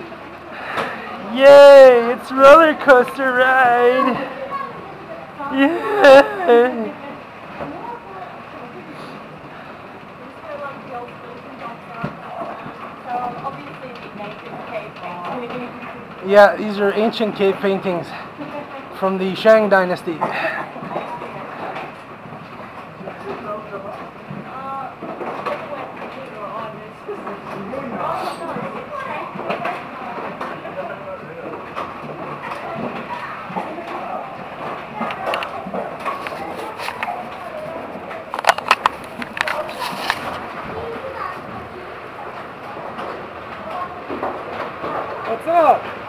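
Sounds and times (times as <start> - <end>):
coaster car rolling on rail track: 0.0 - 46.0
faint voices: 0.0 - 46.0.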